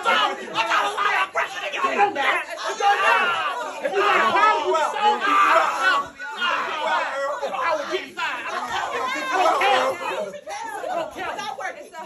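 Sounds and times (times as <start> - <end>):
people chattering excitedly: 0.0 - 12.0.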